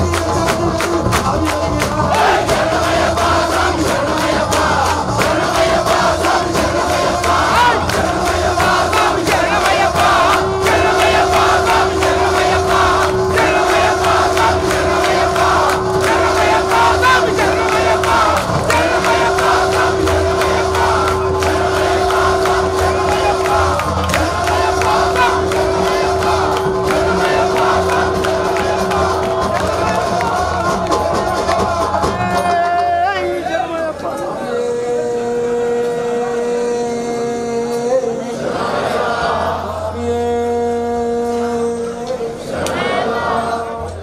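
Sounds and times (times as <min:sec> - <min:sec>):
crowd singing devotional song: 0:00.0 - 0:44.0
steady held drone note: 0:02.2 - 0:31.5, 0:39.4 - 0:42.6.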